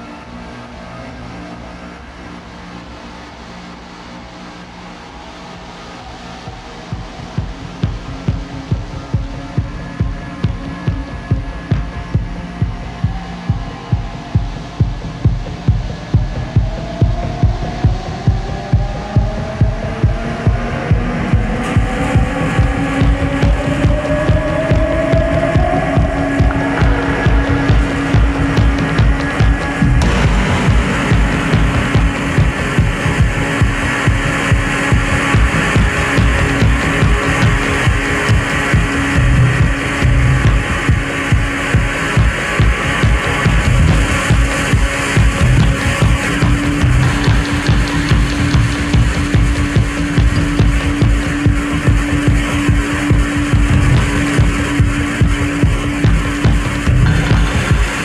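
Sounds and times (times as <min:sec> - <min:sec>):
live techno music: 0:00.0 - 0:58.0
rising pitch glides: 0:00.0 - 0:58.0
kick drum pulse: 0:06.9 - 0:58.0.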